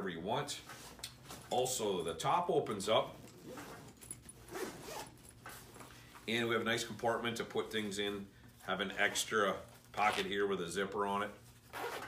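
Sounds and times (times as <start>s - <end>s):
backpack zipper scraping: 3.3s - 5.7s, 11.7s - 12.0s.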